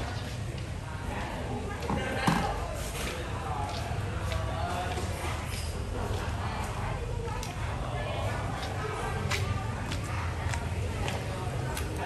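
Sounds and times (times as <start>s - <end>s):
footsteps on pavement: 3.2s - 5.4s, 8.5s - 12.0s.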